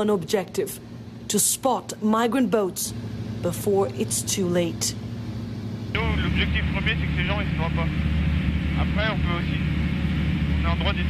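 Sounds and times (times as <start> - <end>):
light aircraft engine drone: 0.0 - 11.0
man talking: 6.0 - 9.7, 10.5 - 11.0.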